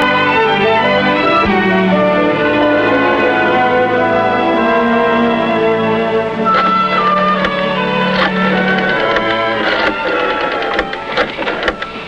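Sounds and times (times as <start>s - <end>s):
music: 0.0s - 12.0s
telephone handset clicks and knocks: 8.2s - 11.9s.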